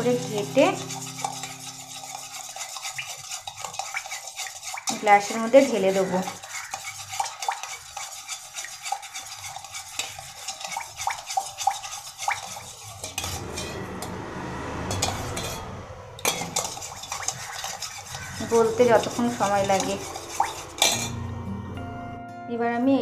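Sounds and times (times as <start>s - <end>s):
liquid swirling: 0.2s - 13.7s, 16.2s - 21.2s.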